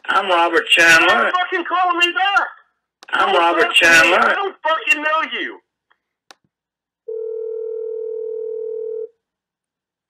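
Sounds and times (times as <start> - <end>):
telephone dial tone: 7.1 - 9.1.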